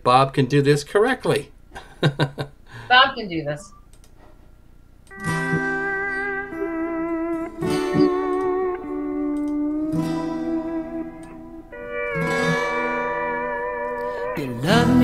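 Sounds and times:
slide guitar instrumental: 0:05.1 - 0:15.0.

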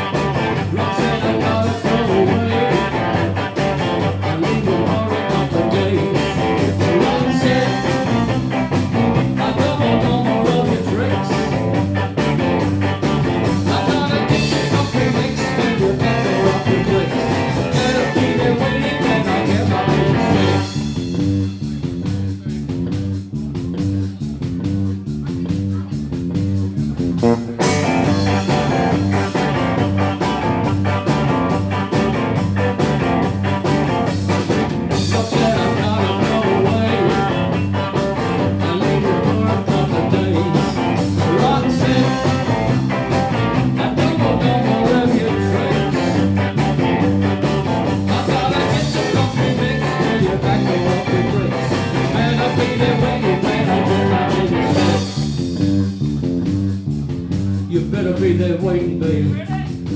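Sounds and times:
rock band playing: 0:00.0 - 0:59.9.

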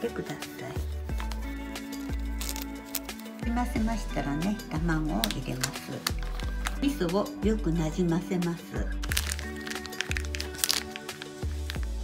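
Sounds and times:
background music: 0:00.0 - 0:12.0
plastic bag crinkling: 0:01.1 - 0:03.5, 0:05.2 - 0:06.9, 0:09.0 - 0:12.0.

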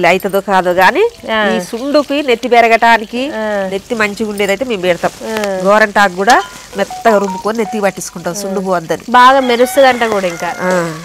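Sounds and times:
leaves sizzling in hot oil: 0:00.0 - 0:11.0
woman talking: 0:00.0 - 0:11.0
ladle stirring in metal pot: 0:06.0 - 0:08.3.

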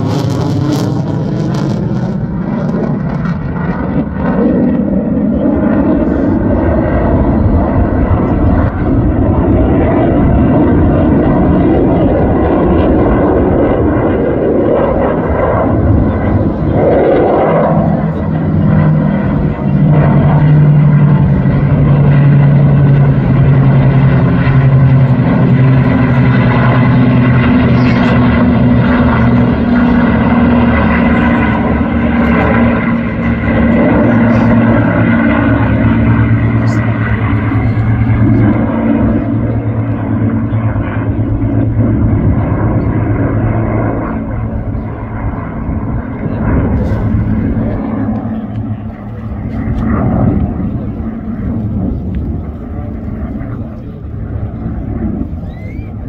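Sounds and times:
aircraft engine drone: 0:00.0 - 0:56.0.

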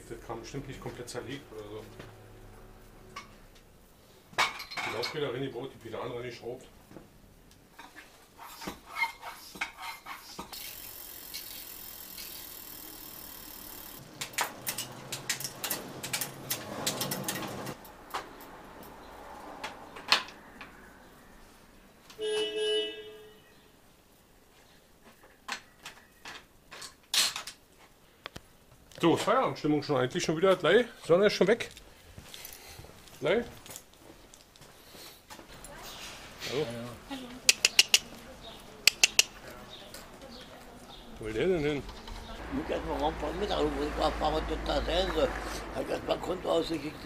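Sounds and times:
tools and bike parts clicking: 0:07.8 - 0:19.0, 0:37.5 - 0:38.1, 0:38.9 - 0:39.3.

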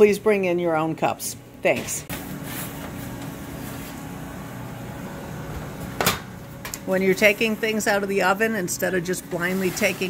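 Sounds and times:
oven fan humming: 0:00.0 - 0:10.0.

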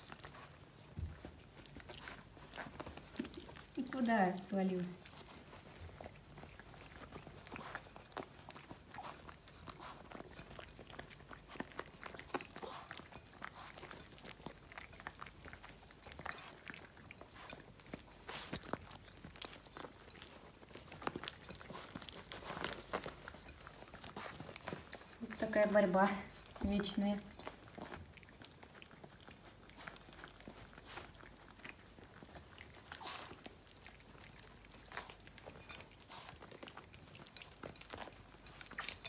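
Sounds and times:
dogs licking and chewing: 0:00.0 - 0:39.0.

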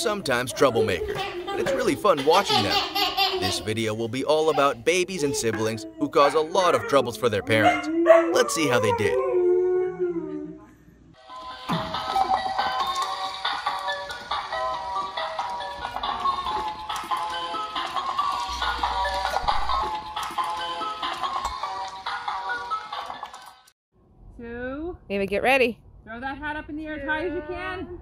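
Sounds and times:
tune playing: 0:11.2 - 0:22.2.

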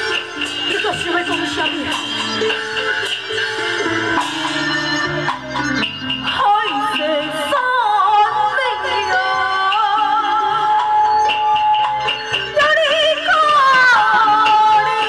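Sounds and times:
woman singing through speakers: 0:00.0 - 0:02.4, 0:06.2 - 0:15.0
opera instrumental accompaniment: 0:00.0 - 0:15.0.

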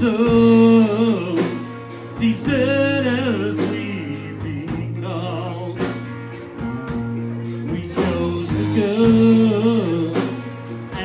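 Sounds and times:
man singing: 0:00.0 - 0:11.0
rock band playing: 0:00.0 - 0:11.0.

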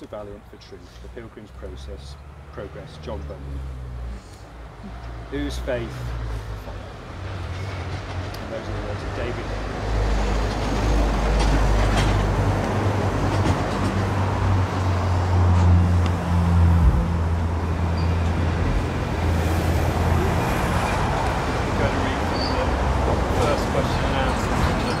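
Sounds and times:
traffic noise hiss: 0:00.0 - 0:07.2
heavy vehicle engine rumble: 0:00.0 - 0:25.0.

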